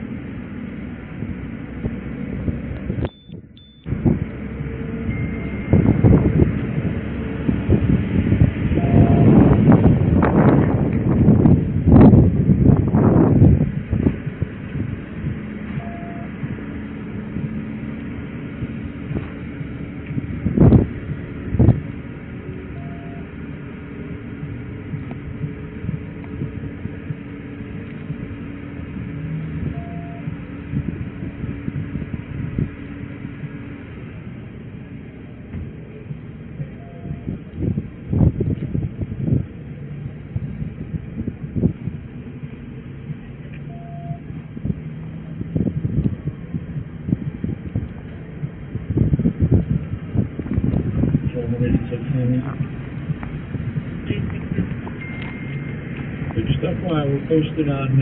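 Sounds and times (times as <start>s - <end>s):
idling car engine hum: 0.0s - 58.0s
short faint beep: 3.0s - 4.0s, 5.0s - 6.0s, 8.8s - 9.4s, 15.8s - 16.4s, 22.8s - 23.3s, 36.8s - 37.4s, 43.6s - 44.3s, 55.0s - 55.9s.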